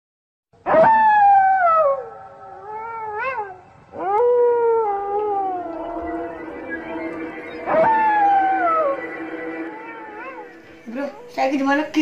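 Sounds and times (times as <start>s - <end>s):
wolf howls: 0.7s - 10.8s.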